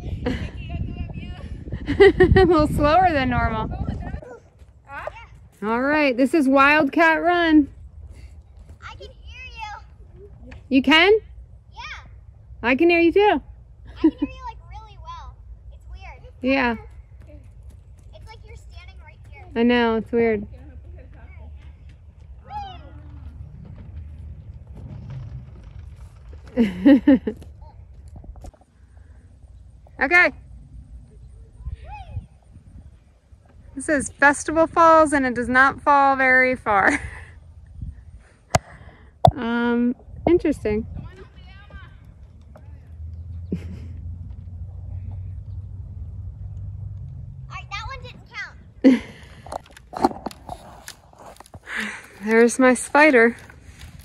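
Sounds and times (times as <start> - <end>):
low rumble of metal slide: 22.7 - 26.6
child crawling on rope net: 49.6 - 54.0.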